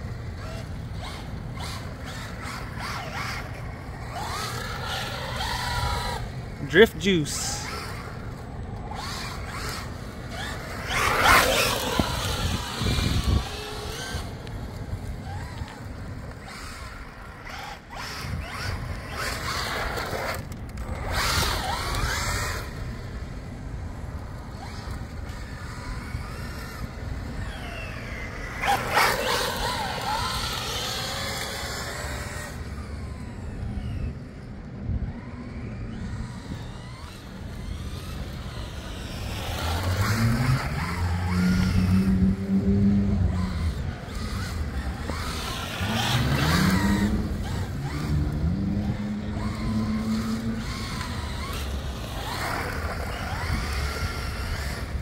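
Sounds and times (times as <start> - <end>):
electric motor whining: 0.2 - 55.0.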